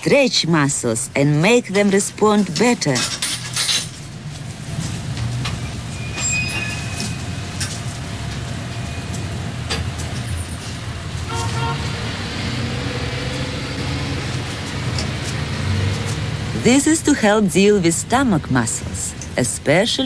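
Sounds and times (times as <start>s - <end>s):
street traffic rumbling: 0.0s - 20.0s
vehicle horn: 11.3s - 12.0s.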